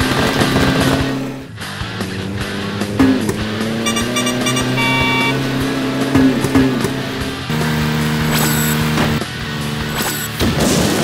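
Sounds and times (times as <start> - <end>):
background music: 0.1 - 11.0
cartoon car engine: 1.8 - 11.0
short electronic beeps: 3.8 - 5.4.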